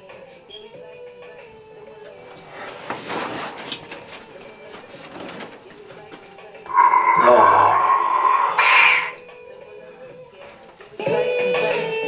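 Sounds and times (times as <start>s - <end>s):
man yelling high-pitched: 6.7s - 8.7s.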